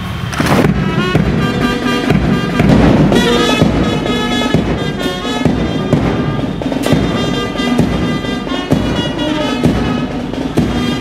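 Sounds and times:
sharp crash: 0:00.0 - 0:08.2
brass band music: 0:00.1 - 0:11.0.

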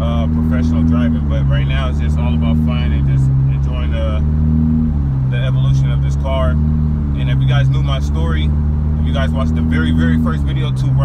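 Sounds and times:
car engine humming at cruise: 0:00.0 - 0:11.0
road noise: 0:00.0 - 0:11.0.

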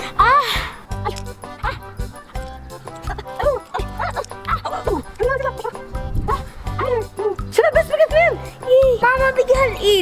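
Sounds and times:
girl whimpering and crying: 0:00.0 - 0:02.0, 0:03.0 - 0:07.5
background music with steady beat: 0:00.0 - 0:10.0.

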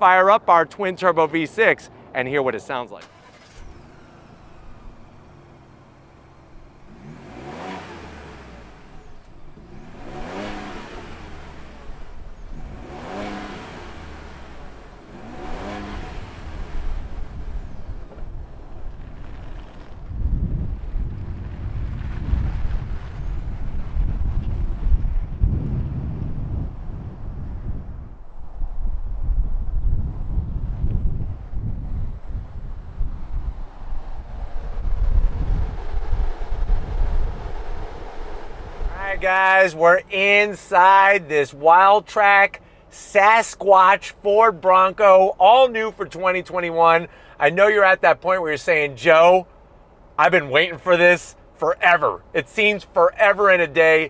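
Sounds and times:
car engine idling and revving: 0:02.9 - 0:54.0
car driving off rumble: 0:03.0 - 0:43.0.

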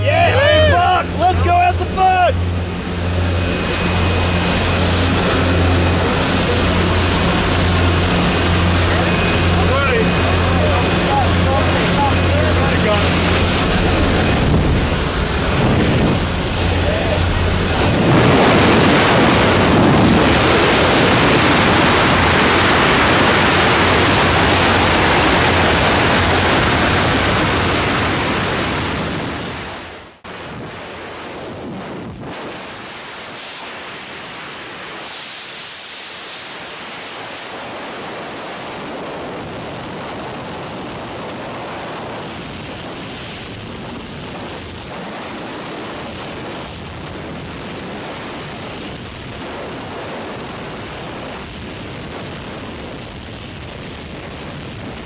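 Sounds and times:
wind rushing at open door: 0:00.0 - 0:34.3
freefall wind on microphone: 0:00.0 - 0:55.0
propeller aircraft engine drone: 0:00.0 - 0:55.0.

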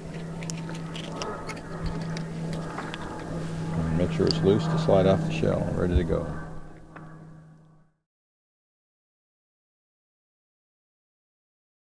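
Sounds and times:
knife scraping oyster shell: 0:00.0 - 0:03.3
steady low hum: 0:00.0 - 0:08.0.

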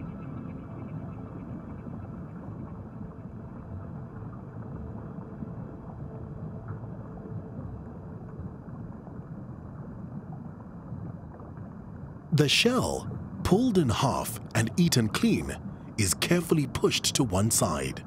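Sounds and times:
underwater rumble of moving water: 0:00.0 - 0:18.0.

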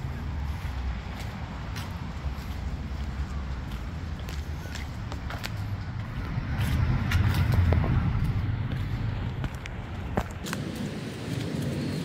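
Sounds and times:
light footsteps on paving: 0:00.0 - 0:11.9
road vehicle rumbling by: 0:00.0 - 0:12.0.

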